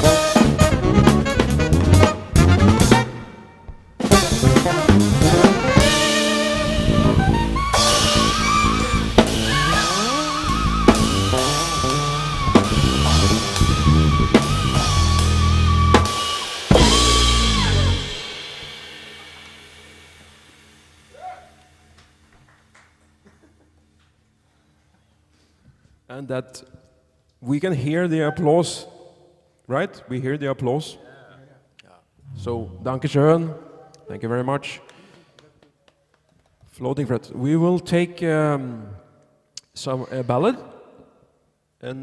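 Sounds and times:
jazz-rock band playing: 0.0s - 20.4s
held wavering saxophone note: 4.1s - 18.4s.

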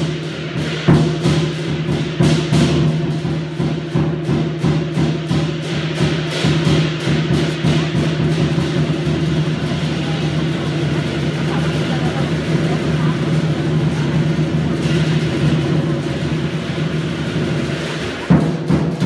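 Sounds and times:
cymbals: 0.0s - 19.0s
drum roll: 0.0s - 19.0s.

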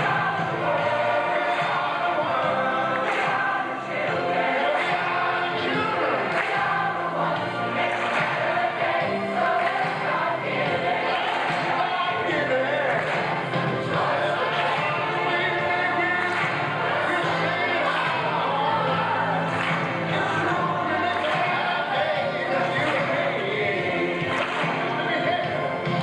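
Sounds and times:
mixed choir singing: 0.0s - 26.0s
music with steady beat: 0.0s - 26.0s.

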